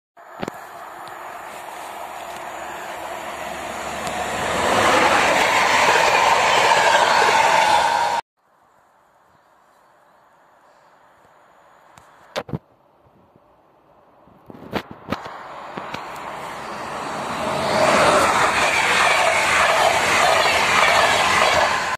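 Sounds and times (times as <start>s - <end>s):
passenger train passing: 0.2s - 8.2s, 15.1s - 21.9s.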